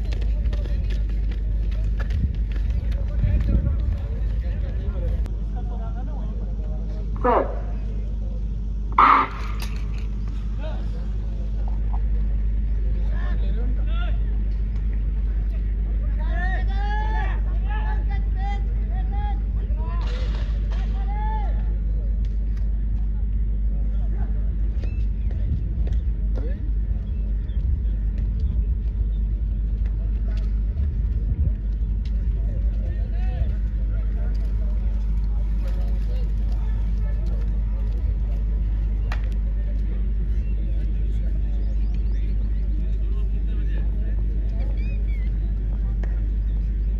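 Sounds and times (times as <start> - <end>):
faint spectators talking: 0.0 - 46.9
low rumble: 0.0 - 46.9
people shouting: 9.0 - 9.6.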